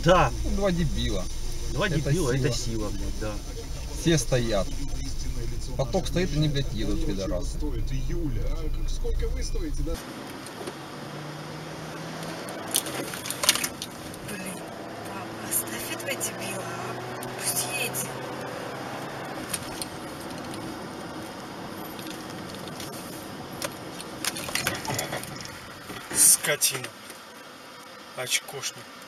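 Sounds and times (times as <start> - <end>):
road and engine noise: 0.0 - 29.0.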